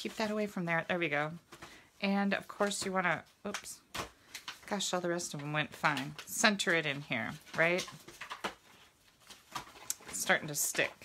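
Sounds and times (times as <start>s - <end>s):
paper ticks and rustles: 2.5s - 11.0s.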